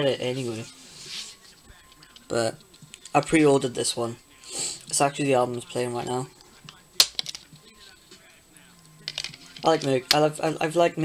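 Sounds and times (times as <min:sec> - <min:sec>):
disc snapping off case hub: 0:06.6 - 0:07.6, 0:09.0 - 0:10.3.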